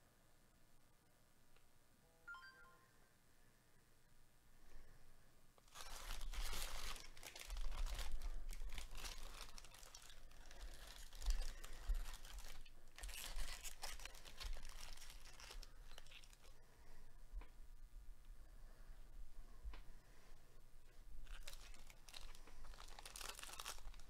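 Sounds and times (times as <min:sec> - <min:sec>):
plastic wrappers crinkling: 0:05.6 - 0:16.6, 0:21.2 - 0:24.0.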